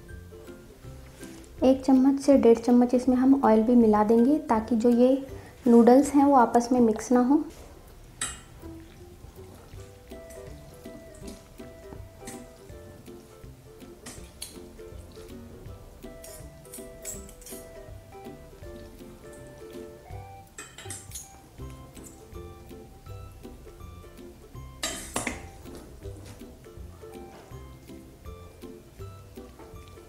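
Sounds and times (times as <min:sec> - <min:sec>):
soft melody: 0:00.0 - 0:30.0
forks clinking against metal colander: 0:16.2 - 0:17.7, 0:20.6 - 0:21.4, 0:24.8 - 0:25.4.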